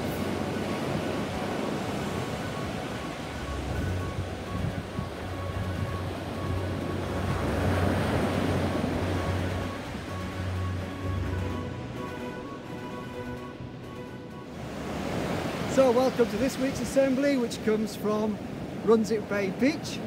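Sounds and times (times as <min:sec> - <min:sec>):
sea surf washing onto beach: 0:00.0 - 0:12.8, 0:13.9 - 0:20.0
quiet music with low bass: 0:00.0 - 0:15.8.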